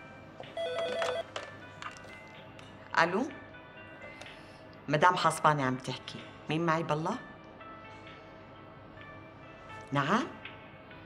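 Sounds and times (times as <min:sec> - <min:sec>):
desk telephone ringing: 0:00.5 - 0:01.4.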